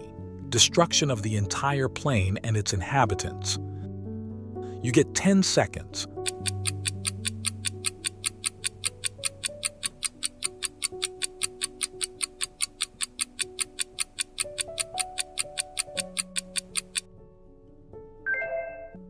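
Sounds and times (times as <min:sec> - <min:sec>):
soft background music: 0:00.0 - 0:19.0
countdown timer ticking: 0:06.1 - 0:17.1.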